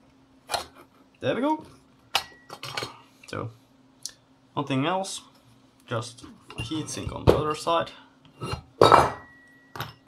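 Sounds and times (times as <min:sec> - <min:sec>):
faint thin ringing tone: 0:02.3 - 0:02.6, 0:09.2 - 0:10.0
metal knocks and clinks on workbench: 0:08.8 - 0:10.0.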